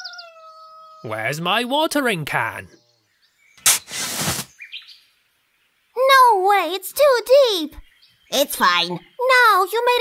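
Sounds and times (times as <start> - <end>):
faint bird chirps: 0.0 - 1.3, 2.4 - 10.0
cartoon shovel digging dirt: 3.6 - 4.6.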